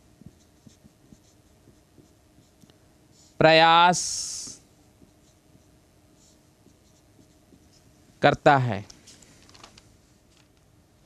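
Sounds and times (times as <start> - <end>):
marker pen writing on whiteboard: 0.0 - 2.7, 4.4 - 8.0.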